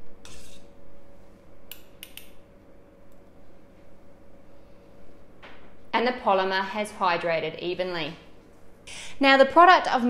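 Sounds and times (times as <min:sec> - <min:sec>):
metal spatula scraping a bowl: 0:00.2 - 0:00.7.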